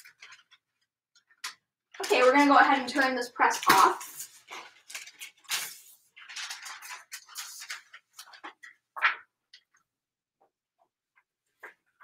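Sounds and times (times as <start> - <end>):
paper rustling: 0.0 - 9.9.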